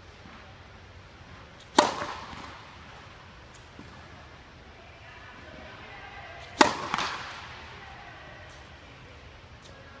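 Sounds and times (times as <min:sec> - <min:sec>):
tennis racket striking ball: 0:01.6 - 0:03.0, 0:06.4 - 0:07.5.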